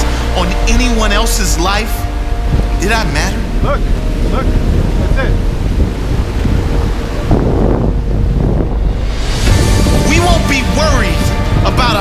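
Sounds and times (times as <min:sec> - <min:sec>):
ocean surf washing around rocks: 0:00.0 - 0:12.0
wind buffeting microphone: 0:00.0 - 0:12.0.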